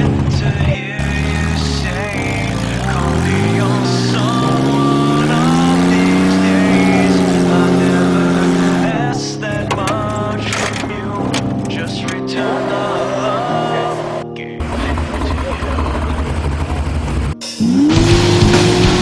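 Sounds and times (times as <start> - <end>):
truck engine revving: 0.0 - 19.0.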